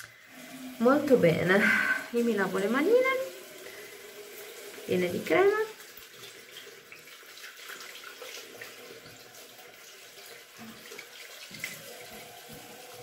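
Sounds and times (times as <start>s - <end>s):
hands washing: 0.0s - 13.0s
tap running into a sink: 7.8s - 13.0s.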